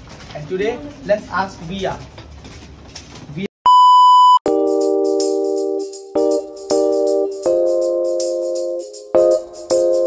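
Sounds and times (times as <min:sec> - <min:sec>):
loud electronic beep: 0:03.7 - 0:04.5
jingling percussion: 0:04.5 - 0:10.0.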